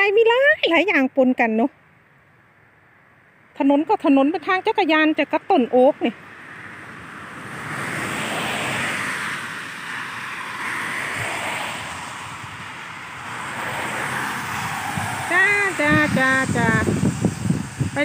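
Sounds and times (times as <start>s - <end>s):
tyres hissing on wet road: 6.2s - 18.0s.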